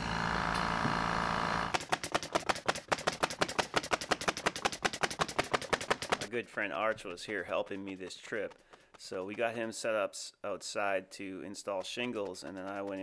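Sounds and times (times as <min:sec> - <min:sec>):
air compressor running: 0:00.0 - 0:01.8
rapid even clicking: 0:01.7 - 0:09.9, 0:11.6 - 0:13.0.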